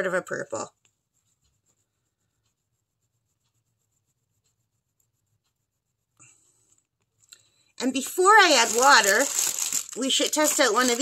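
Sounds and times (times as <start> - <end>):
pastel scratching on paper: 0.8 - 6.5, 10.0 - 11.0.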